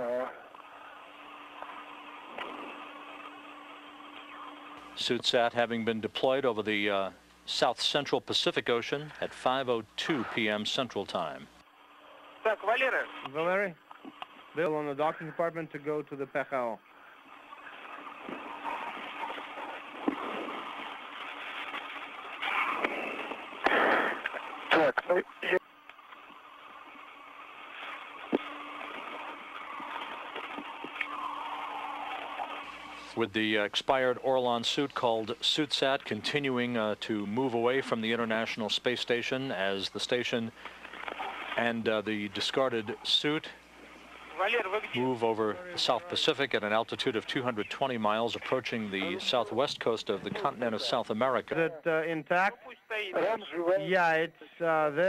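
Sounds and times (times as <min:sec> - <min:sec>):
faint low hum: 0:00.0 - 0:55.0
radio static hiss: 0:00.0 - 0:55.0.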